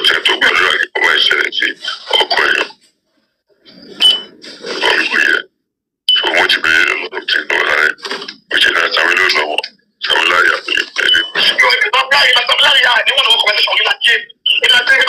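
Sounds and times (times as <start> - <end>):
recorded voice speaking: 0.0 - 2.8, 4.4 - 5.5, 6.1 - 15.0.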